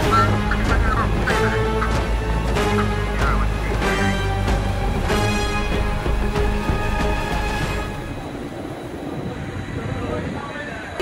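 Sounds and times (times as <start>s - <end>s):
wind buffeting microphone: 8.1s - 11.0s.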